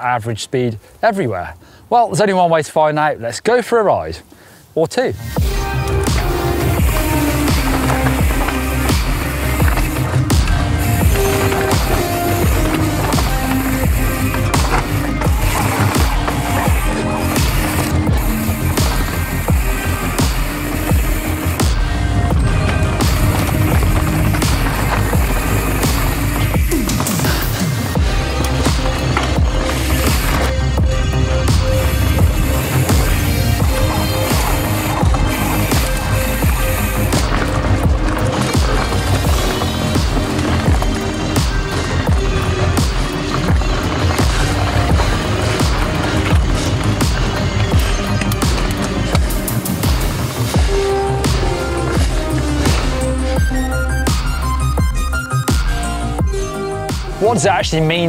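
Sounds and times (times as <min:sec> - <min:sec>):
bike tyres rumbling on dirt: 0:05.2 - 0:58.0
upbeat background music: 0:05.4 - 0:58.0.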